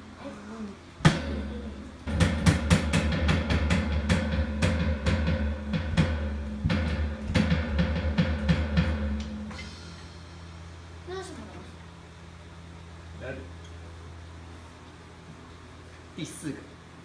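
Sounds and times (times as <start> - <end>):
electronic drum kit playing: 1.0 - 10.7.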